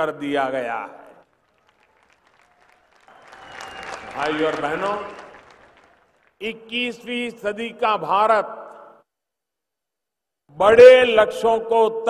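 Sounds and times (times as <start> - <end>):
faint crowd applause: 1.1 - 6.6.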